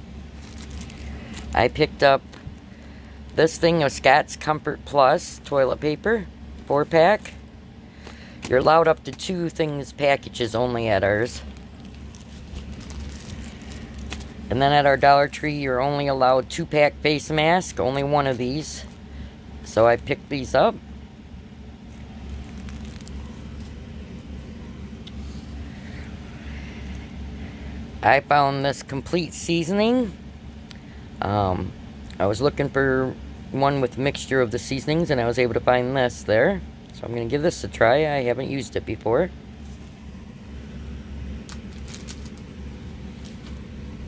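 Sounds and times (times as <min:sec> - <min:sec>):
low background hum: 0:00.0 - 0:44.0.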